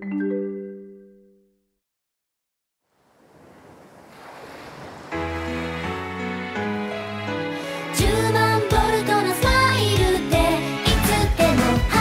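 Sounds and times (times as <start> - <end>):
ocean waves washing: 2.9 - 8.8.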